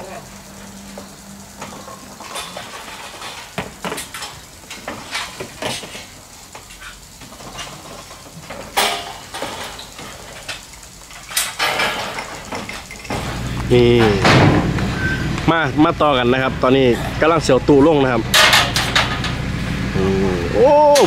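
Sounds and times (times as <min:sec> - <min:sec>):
voices: 0:00.0 - 0:08.1, 0:08.8 - 0:21.0
scaffolding pipes clanking: 0:01.5 - 0:19.6.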